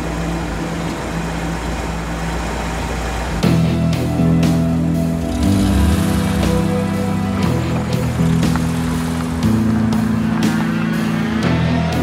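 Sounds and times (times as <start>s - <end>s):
held low bass notes: 2.8s - 12.0s.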